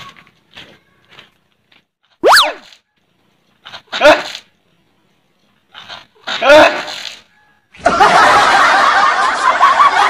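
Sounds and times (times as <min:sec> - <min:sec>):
cartoon boing sound effect: 0:02.2 - 0:02.6.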